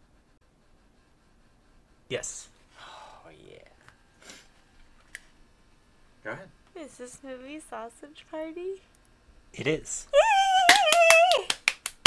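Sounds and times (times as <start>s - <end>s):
squeal of delight with laughter: 10.2s - 11.5s
rapid hand clapping: 10.6s - 12.0s.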